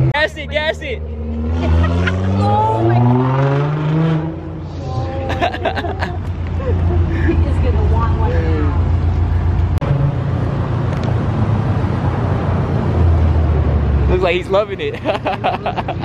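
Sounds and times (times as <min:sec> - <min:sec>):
car engine low drone: 0:00.0 - 0:16.0
road noise: 0:00.0 - 0:16.0.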